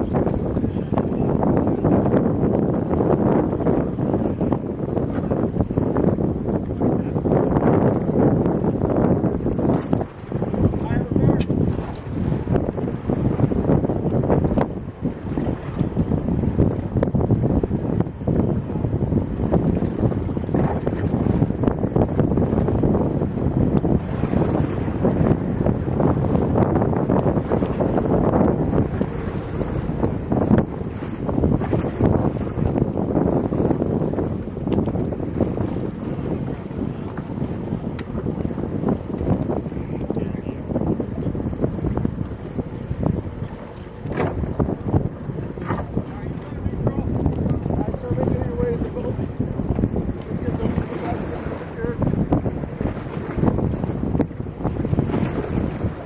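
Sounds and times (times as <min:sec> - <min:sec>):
water washing and splashing: 0:00.0 - 0:56.0
wind buffeting microphone: 0:00.0 - 0:56.0.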